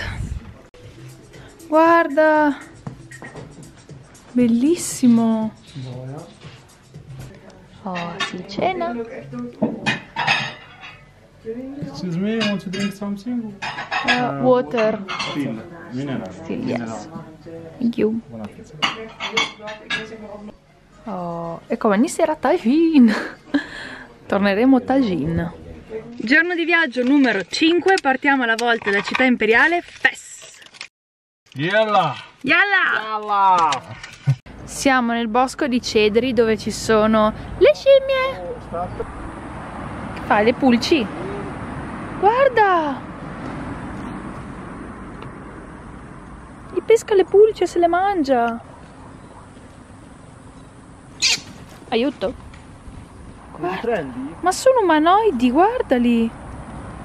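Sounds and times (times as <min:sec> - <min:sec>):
plates and cutlery clinking: 0:07.9 - 0:08.5, 0:09.6 - 0:11.2, 0:12.4 - 0:13.0, 0:13.6 - 0:15.6, 0:18.8 - 0:20.2
outdoor low rumble with hiss: 0:31.7 - 0:57.0.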